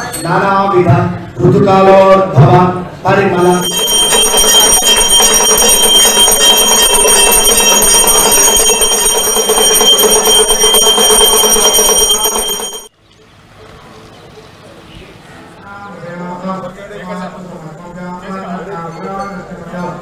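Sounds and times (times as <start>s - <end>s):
temple bell ringing rapidly: 3.4s - 12.9s.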